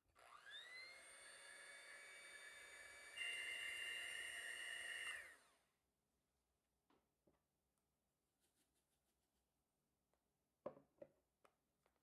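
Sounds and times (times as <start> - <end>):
electric hand mixer whirring: 0.1 - 5.7.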